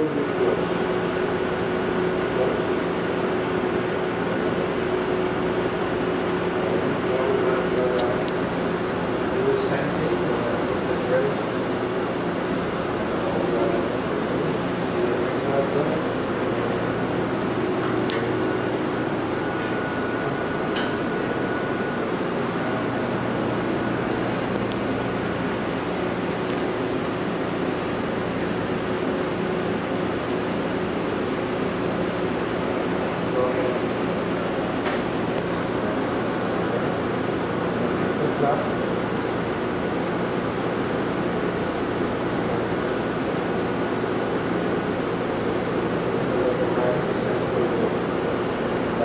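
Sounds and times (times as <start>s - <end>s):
high-pitched whine: 0.0s - 49.0s.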